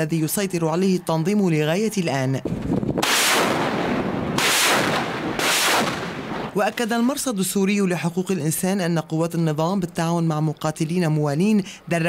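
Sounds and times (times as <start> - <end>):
rocket launcher blasts: 2.9 - 6.6.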